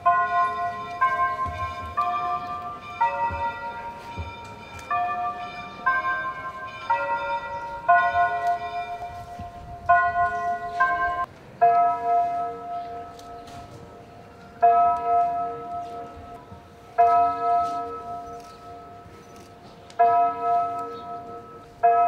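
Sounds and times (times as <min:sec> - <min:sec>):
bells ringing: 0:00.0 - 0:22.0.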